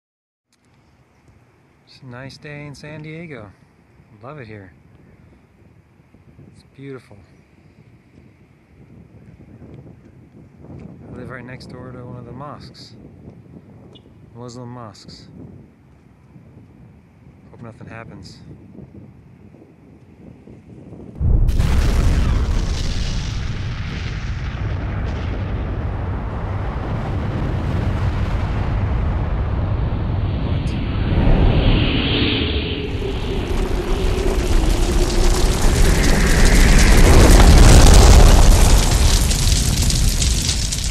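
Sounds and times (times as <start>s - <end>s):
wind buffeting microphone: 4.0s - 6.7s, 7.5s - 14.4s, 15.0s - 40.9s
deep explosion rumble: 21.2s - 40.9s
hissing rush: 27.8s - 40.9s.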